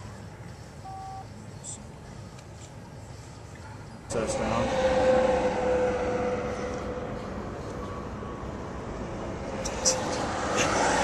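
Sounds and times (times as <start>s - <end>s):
droning hum: 0.0s - 11.0s
tyre and wind road noise: 0.0s - 11.0s.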